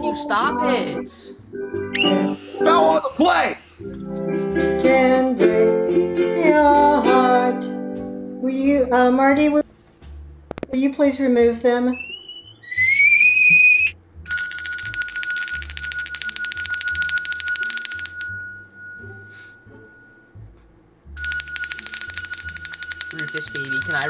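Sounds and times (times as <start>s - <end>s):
short rising squeal: 12.0s - 14.0s
hand bell ringing: 14.3s - 20.0s, 21.2s - 24.0s.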